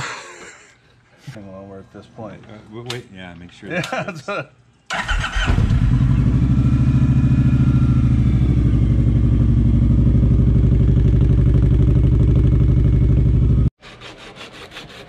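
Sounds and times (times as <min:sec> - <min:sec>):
motorcycle engine idling: 0:05.8 - 0:13.7.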